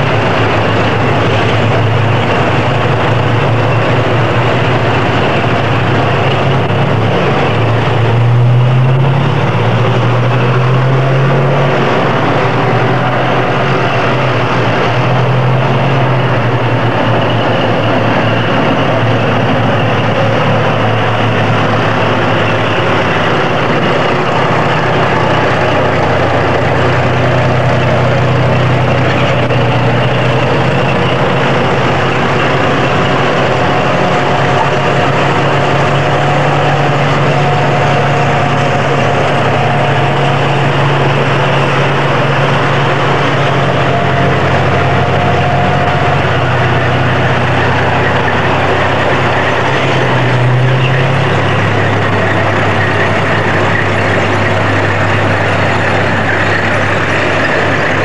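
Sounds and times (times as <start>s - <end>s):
heavy engine running: 0.0s - 58.0s.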